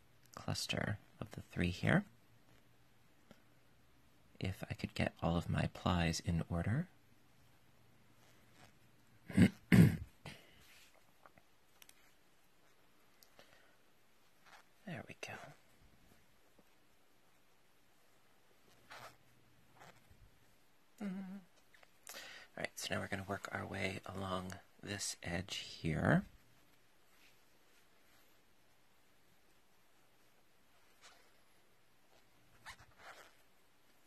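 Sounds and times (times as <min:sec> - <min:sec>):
crochet hook scratching yarn: 0:08.1 - 0:09.1, 0:10.6 - 0:12.9, 0:14.2 - 0:20.2, 0:29.4 - 0:34.0
person speaking a word: 0:14.8 - 0:15.6, 0:21.0 - 0:21.5.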